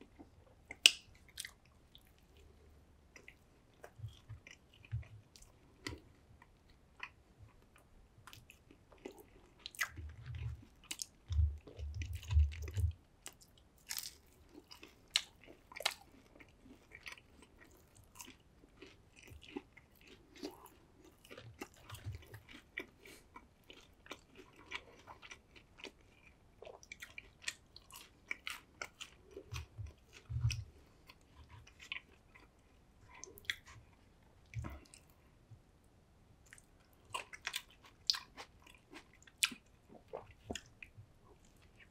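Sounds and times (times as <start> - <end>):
chewing crunchy food: 0.0 - 35.2, 36.4 - 41.9
soft low thumps: 11.3 - 12.8, 29.8 - 30.7.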